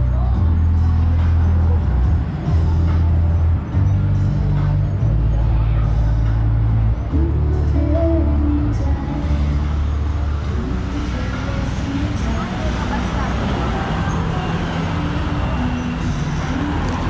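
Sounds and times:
cars and motorbikes passing: 0.0 - 17.0.

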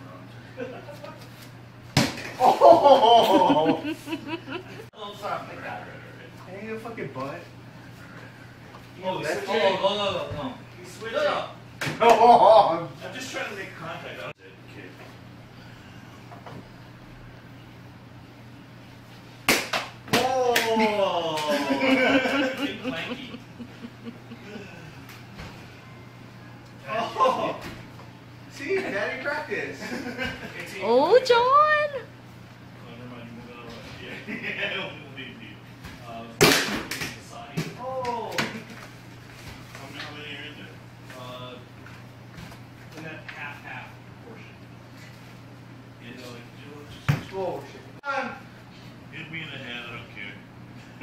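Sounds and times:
low room hum: 0.0 - 51.0
plastic ball smack: 19.4 - 20.7, 36.4 - 37.2
man exclaiming: 20.2 - 23.2.

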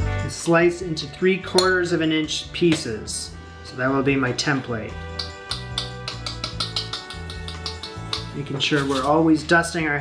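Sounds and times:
background music with quick beat: 0.0 - 3.2, 4.0 - 10.0.

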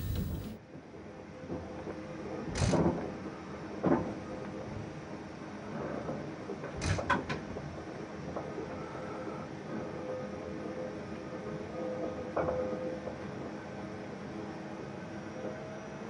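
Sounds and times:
faint steady hum: 0.0 - 0.6
outdoor train sound: 0.0 - 16.0.

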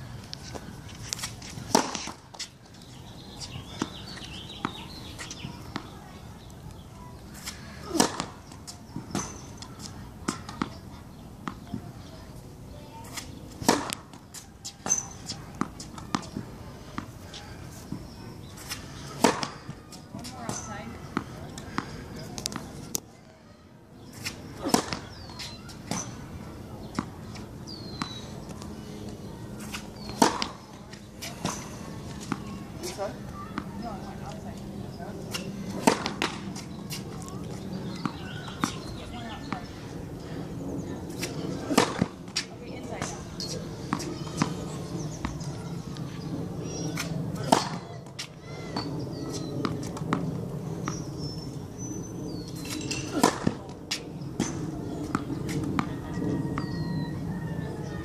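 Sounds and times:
tennis racket hitting ball: 1.1 - 2.5, 7.4 - 9.4, 13.1 - 16.4, 17.9 - 19.6, 24.2 - 26.2, 29.6 - 33.0, 35.3 - 37.0, 41.1 - 43.2, 47.0 - 48.3, 52.7 - 55.9.

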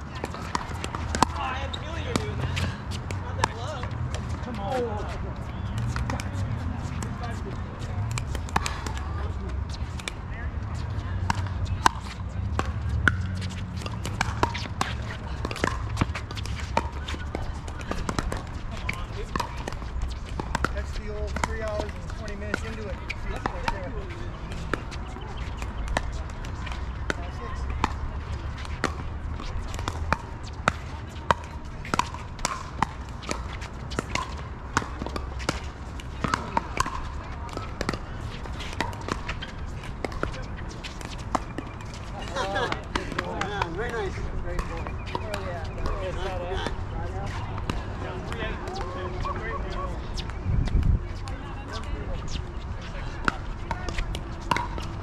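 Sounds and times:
ball bouncing on hard court: 0.1 - 52.4, 53.1 - 55.0
paddles hitting plastic ball: 27.8 - 46.8.

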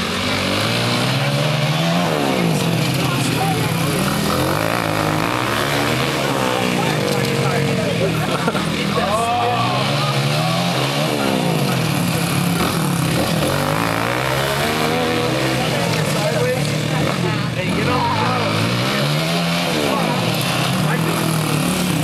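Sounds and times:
dirt bike engines revving: 0.0 - 22.0.

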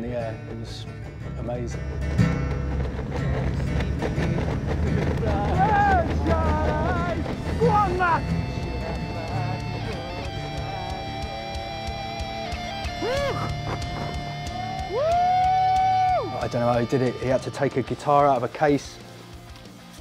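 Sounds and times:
guitar: 0.0 - 20.0.

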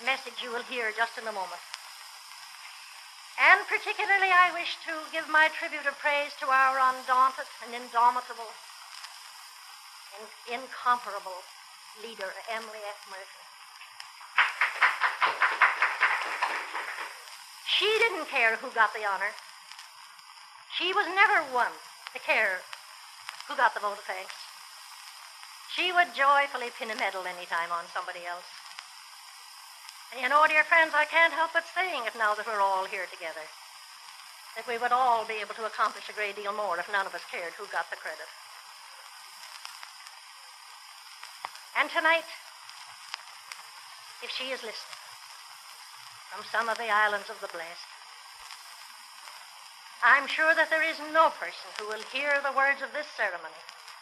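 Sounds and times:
faint crackles: 0.0 - 54.0
old recording hiss: 0.0 - 54.0
audience applause: 14.3 - 17.2.

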